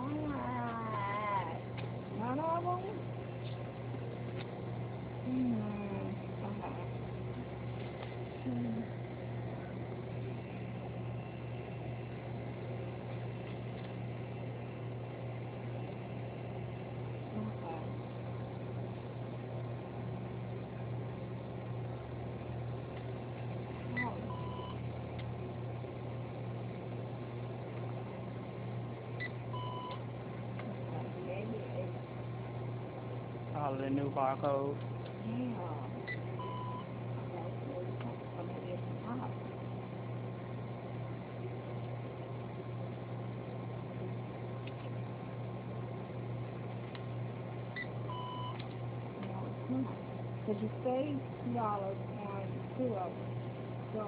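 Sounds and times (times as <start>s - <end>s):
steady low hum: 0.0s - 54.0s
checkout register beeps: 24.0s - 24.8s, 29.2s - 30.0s, 36.1s - 36.9s, 47.8s - 48.6s.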